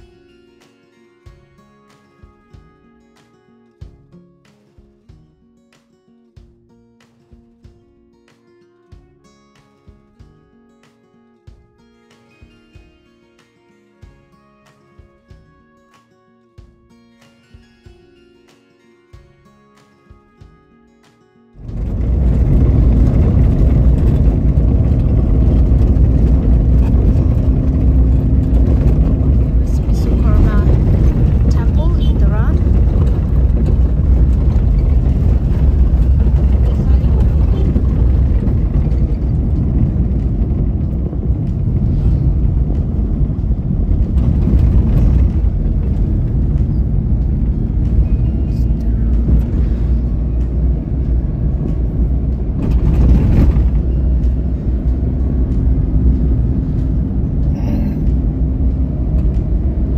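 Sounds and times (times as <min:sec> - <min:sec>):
car interior road rumble: 0:21.6 - 0:59.9.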